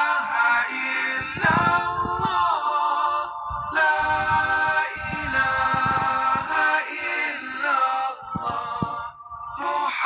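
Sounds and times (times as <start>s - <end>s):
music: 0.0s - 10.0s
voice chanting long gliding notes: 0.0s - 10.0s.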